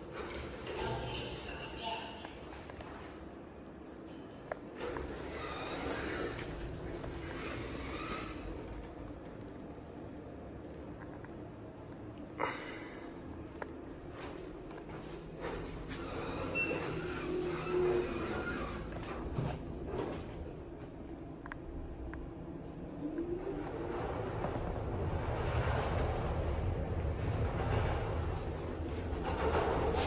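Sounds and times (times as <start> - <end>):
low rumble of moving elevator: 0.0 - 1.8, 2.6 - 30.0
elevator drive whine: 2.6 - 30.0.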